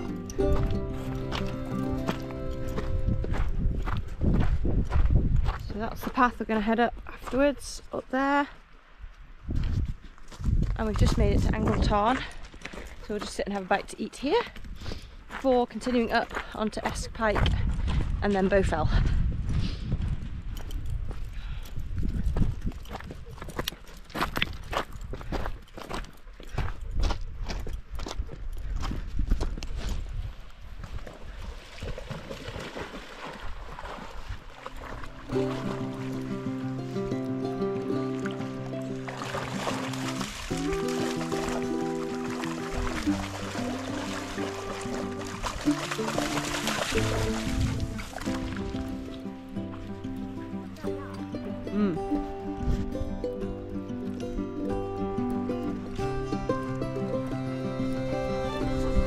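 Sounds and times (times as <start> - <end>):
background music with light beat: 0.0 - 3.5
wind rumbling on microphone: 0.0 - 7.6, 8.9 - 13.2, 16.1 - 36.4, 39.4 - 49.2, 52.0 - 53.7, 58.1 - 59.0.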